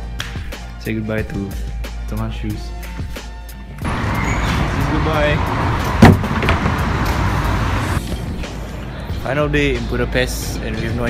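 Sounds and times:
street traffic noise: 0:03.8 - 0:11.0
hollow thud on plastic bin: 0:06.0 - 0:06.7
small knock: 0:06.0 - 0:06.7.

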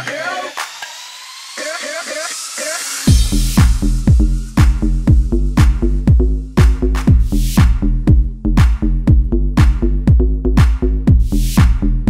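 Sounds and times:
hissing noise sweep: 0:00.0 - 0:05.1
house music: 0:00.0 - 0:12.0.

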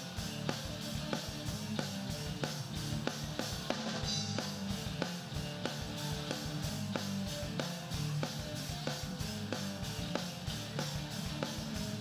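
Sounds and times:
bass guitar: 0:00.0 - 0:12.0
drum kit beat: 0:00.0 - 0:12.0
electric guitars: 0:00.0 - 0:12.0.

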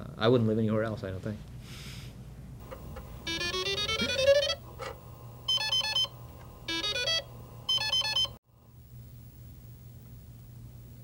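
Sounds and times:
low steady hum: 0:02.2 - 0:11.0
synthesizer music with beeping notes: 0:03.3 - 0:04.6.

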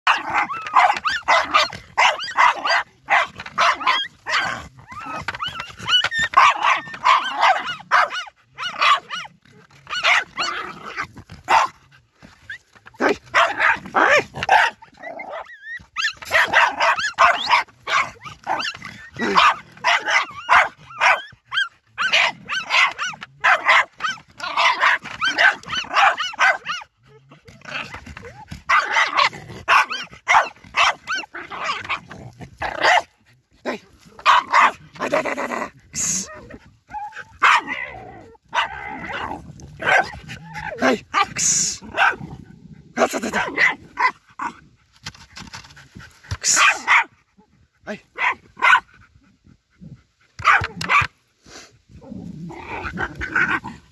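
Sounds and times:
terrier barking hard and fast: 0:00.0 - 0:49.6, 0:50.2 - 0:51.2, 0:52.4 - 0:53.9.

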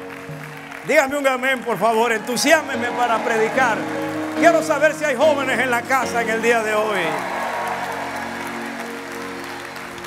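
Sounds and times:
crowd applauding and cheering: 0:00.0 - 0:10.0
held instrumental chord: 0:02.4 - 0:10.0.

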